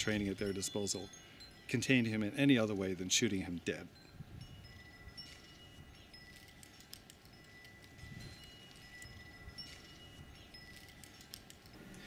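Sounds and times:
high chimes ringing: 0.0 - 12.0.

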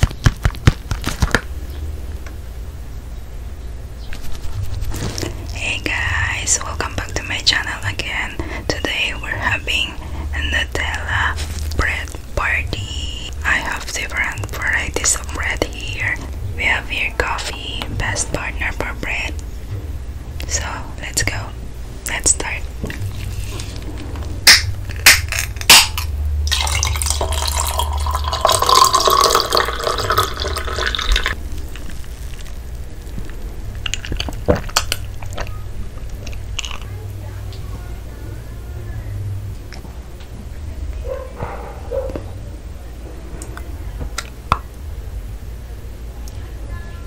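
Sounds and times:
soft whispering: 5.3 - 19.4, 20.5 - 23.6
sharp clicks opening a can: 24.5 - 26.1
coffee pouring over ice: 26.5 - 33.2.

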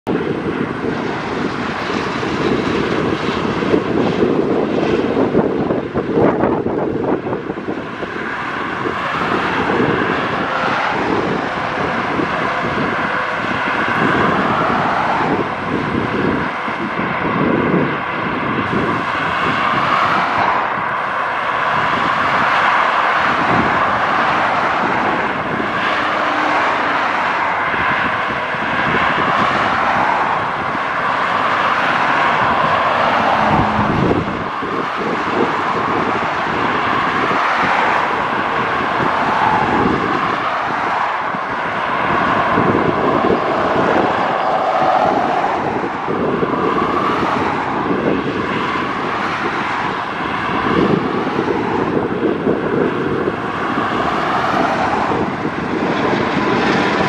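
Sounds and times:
highway traffic rushing: 0.0 - 57.0.

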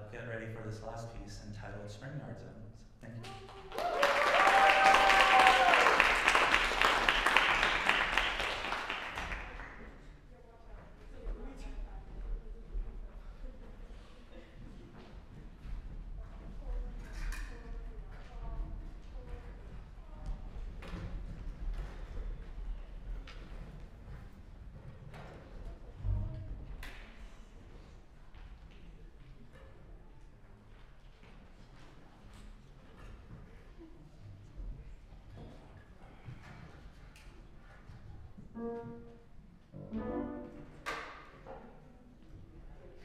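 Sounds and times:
held instrument note: 38.5 - 40.9.

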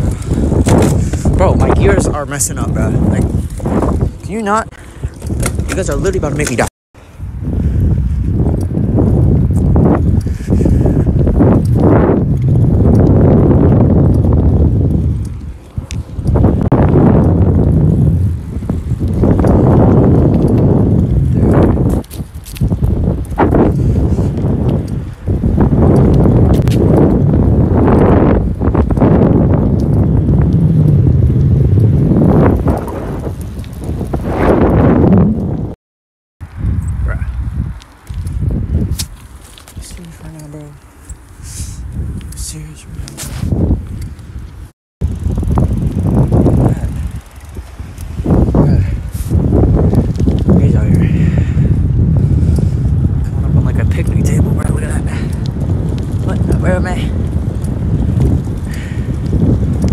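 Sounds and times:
wind buffeting microphone: 0.0 - 35.8, 36.4 - 59.9
bike knocking over ground: 0.5 - 1.3.

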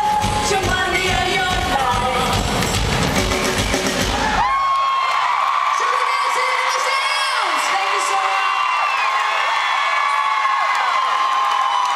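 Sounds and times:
live rock band playing: 0.0 - 4.5
crowd screaming and cheering: 0.0 - 11.9
high whoops: 4.2 - 11.9.

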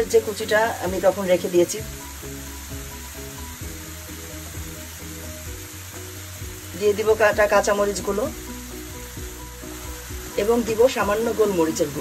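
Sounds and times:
soft background music: 0.0 - 12.0
vegetables sizzling in oil: 0.0 - 12.0.

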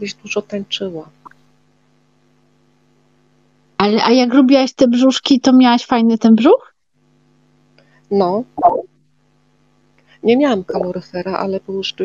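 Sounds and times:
faint electrical hum: 0.0 - 12.0
person speaking: 8.1 - 8.9.

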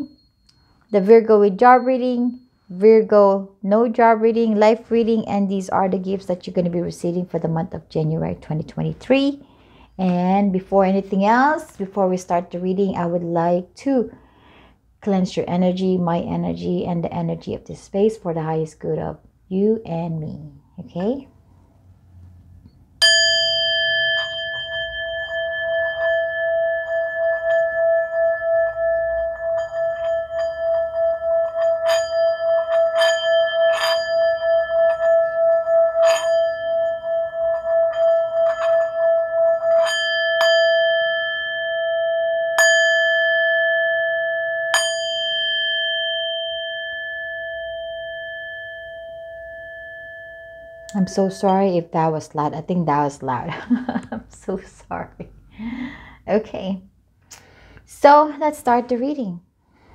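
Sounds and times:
singing bowl rim ringing: 0.0 - 3.2, 22.7 - 52.0
singing bowl struck: 23.0 - 51.7
mallet clicking on rim: 23.0 - 51.8.

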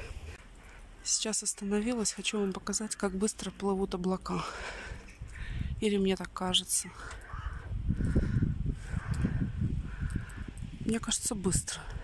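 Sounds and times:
wind buffeting microphone: 4.6 - 12.0.

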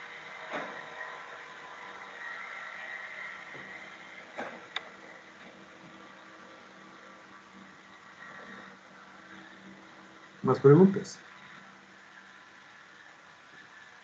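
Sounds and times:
microphone hiss and hum: 0.0 - 14.0.

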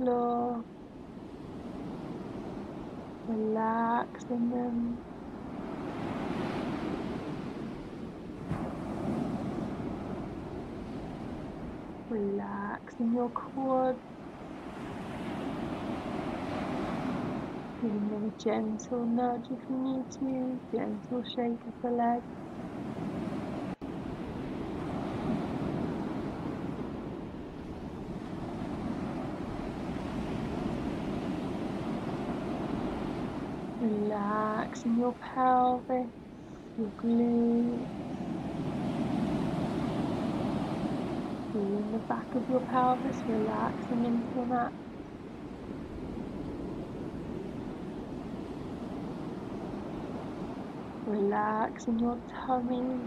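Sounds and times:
sea waves breaking on shore: 0.0 - 18.9, 19.6 - 53.0.

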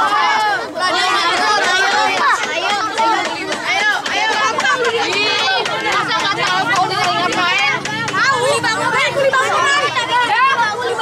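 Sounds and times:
children chattering excitedly: 0.0 - 11.0.

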